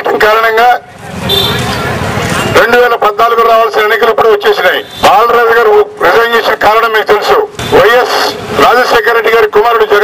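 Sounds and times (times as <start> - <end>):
man speaking into a microphone: 0.0 - 0.9, 2.4 - 10.0
loud rush of noise: 0.0 - 10.0.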